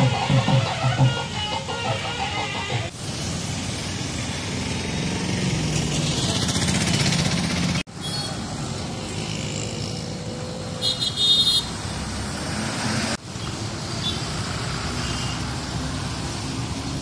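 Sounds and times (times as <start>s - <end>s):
vehicle horn: 0.0s - 2.9s, 10.8s - 11.8s
road traffic passing: 0.0s - 17.0s.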